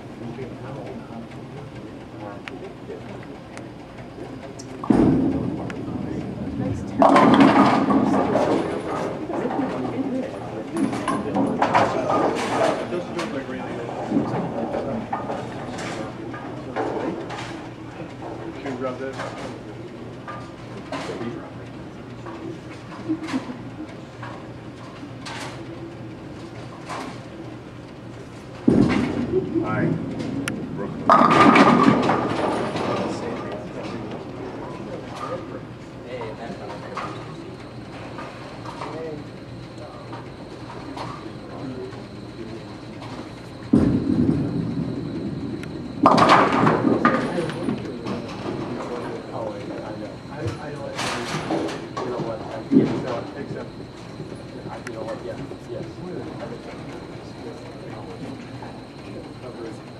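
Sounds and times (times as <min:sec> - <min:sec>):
chatter: 0:00.0 - 0:59.9
bowling ball rolling: 0:04.8 - 0:10.0, 0:28.6 - 0:35.5, 0:43.1 - 0:49.8.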